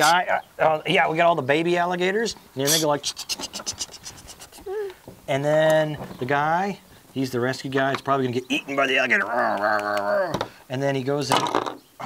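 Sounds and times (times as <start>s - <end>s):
pitched squeak: 2.6s - 4.7s
man imitating alligator chatter: 2.6s - 5.0s, 8.4s - 10.4s.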